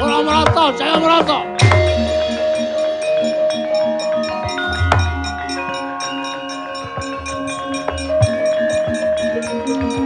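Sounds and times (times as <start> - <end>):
ringing metallophone notes: 0.0 - 10.0.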